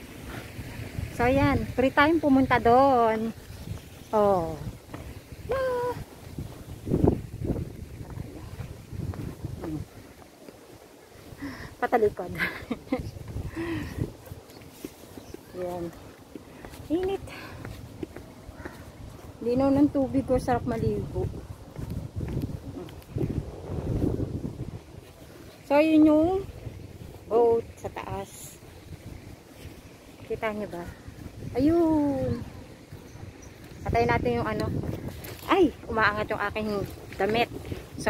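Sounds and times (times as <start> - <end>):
wind buffeting microphone: 0.0 - 38.0
woman humming: 5.5 - 6.1.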